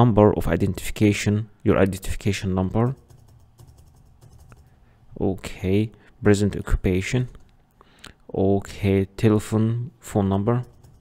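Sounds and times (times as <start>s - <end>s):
computer keyboard keystrokes: 2.9s - 4.7s, 10.6s - 11.0s.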